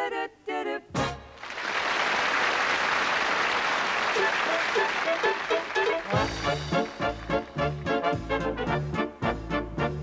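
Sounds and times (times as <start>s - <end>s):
audience applauding: 1.4s - 8.0s
band playing swing tune: 4.1s - 10.0s.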